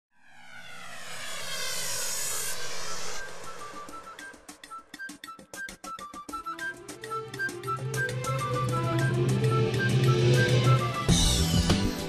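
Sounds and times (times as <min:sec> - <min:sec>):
rushing whoosh: 0:00.2 - 0:04.9.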